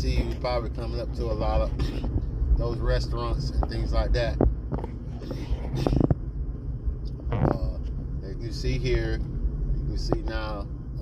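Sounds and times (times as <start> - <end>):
car interior engine and tyre rumble: 0.0 - 11.0.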